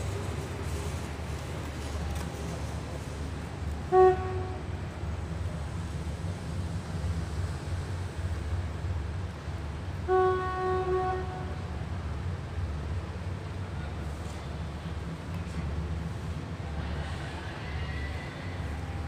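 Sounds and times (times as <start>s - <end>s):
diesel train engine rumble: 0.0s - 19.0s
train horn blasts: 3.8s - 5.0s, 10.0s - 11.7s.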